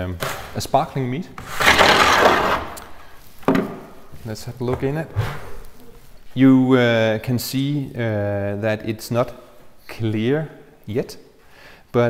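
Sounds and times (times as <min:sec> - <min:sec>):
plastic lid scraping: 0:01.3 - 0:03.9.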